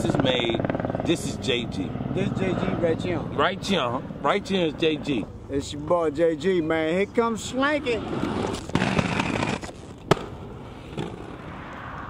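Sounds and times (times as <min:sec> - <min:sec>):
skate wheels rolling: 0:07.4 - 0:11.5
skates grinding on stone ledge: 0:07.8 - 0:11.4
skates landing clack: 0:08.5 - 0:11.4.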